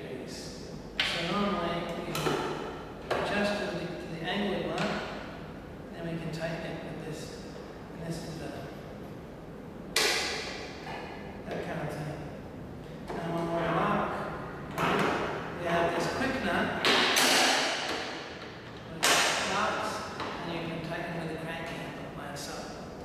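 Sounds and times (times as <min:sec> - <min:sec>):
man talking: 0:00.0 - 0:02.4, 0:03.1 - 0:05.0, 0:05.9 - 0:08.8, 0:11.4 - 0:12.4, 0:13.1 - 0:14.9, 0:15.6 - 0:17.0, 0:18.8 - 0:22.8.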